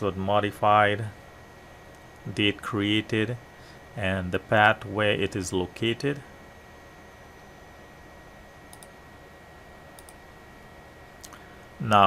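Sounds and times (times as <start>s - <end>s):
computer mouse clicks: 8.7s - 9.0s, 10.0s - 10.2s.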